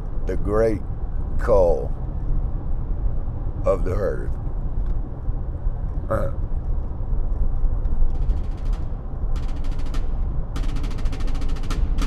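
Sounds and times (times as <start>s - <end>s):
car road and engine noise: 0.0s - 12.0s
rapid rattling ticks: 6.8s - 12.0s.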